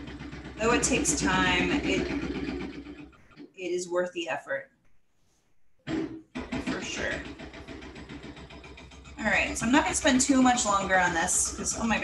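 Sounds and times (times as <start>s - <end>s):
steady low hum: 0.0s - 3.5s, 5.7s - 12.0s.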